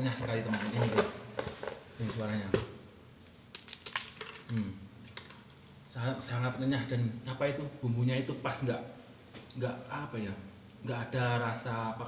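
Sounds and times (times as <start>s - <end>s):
rice cracker snapping: 3.3s - 5.4s.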